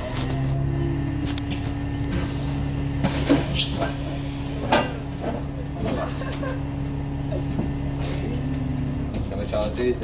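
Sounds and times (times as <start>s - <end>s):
vehicle engine hum from inside: 0.0s - 10.0s.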